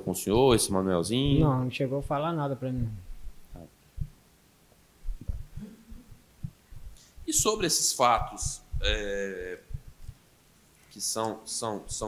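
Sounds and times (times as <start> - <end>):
microphone handling thumps: 1.2 - 2.2, 2.8 - 4.2, 5.0 - 10.2.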